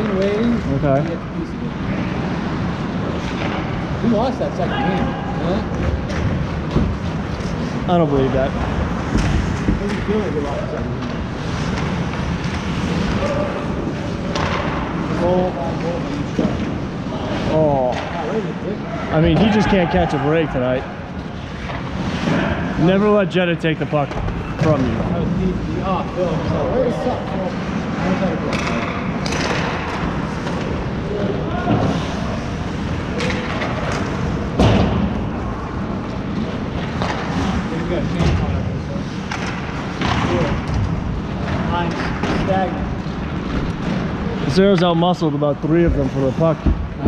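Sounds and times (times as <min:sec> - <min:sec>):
ice rink crowd noise: 0:00.0 - 0:47.0
hockey sticks and puck hitting boards: 0:08.7 - 0:18.2, 0:27.6 - 0:30.9, 0:31.6 - 0:35.4, 0:36.2 - 0:42.5
players shouting: 0:18.8 - 0:20.9.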